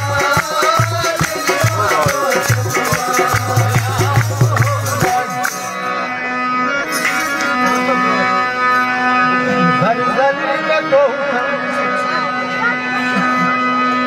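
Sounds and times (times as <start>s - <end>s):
man singing into a microphone: 0.0s - 8.4s, 9.6s - 13.6s
harmonium chords: 0.0s - 14.0s.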